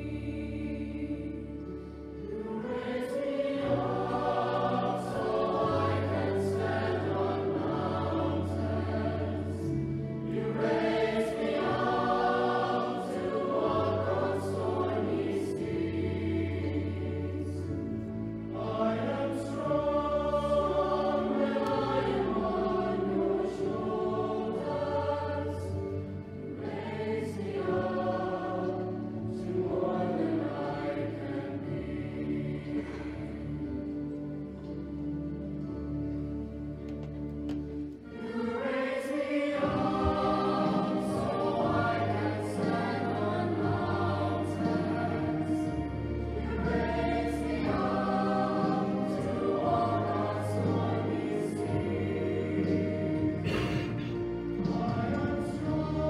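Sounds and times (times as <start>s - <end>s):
choir singing: 0.0s - 56.0s
low sustained accompaniment notes: 0.0s - 56.0s.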